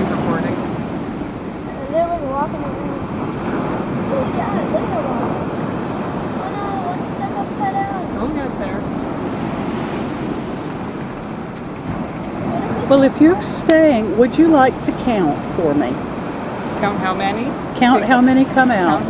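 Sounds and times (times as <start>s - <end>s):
faint voices talking: 0.0s - 19.0s
ocean surf rushing: 0.0s - 19.0s
wind on microphone: 0.0s - 19.0s.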